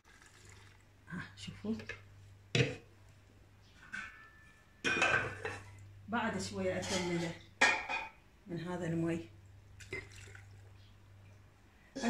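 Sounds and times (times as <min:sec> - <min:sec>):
glass clinking: 0:03.9 - 0:05.6.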